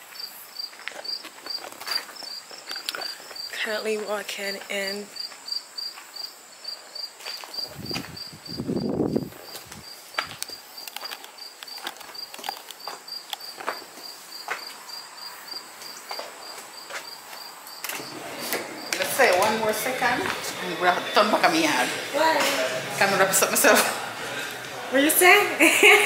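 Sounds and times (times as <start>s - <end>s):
cricket chirping: 0.0s - 20.2s
footsteps clicking: 9.4s - 14.8s, 15.5s - 20.6s.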